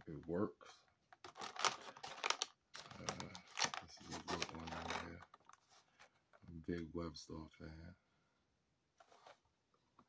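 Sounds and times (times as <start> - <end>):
plastic packaging crinkling: 1.2 - 5.8.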